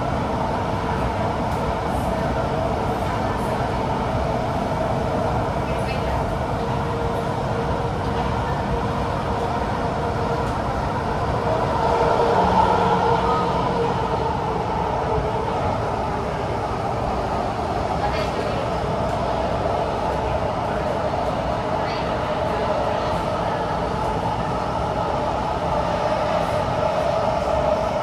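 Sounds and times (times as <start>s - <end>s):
train wheels rumbling on rail: 0.0s - 28.0s.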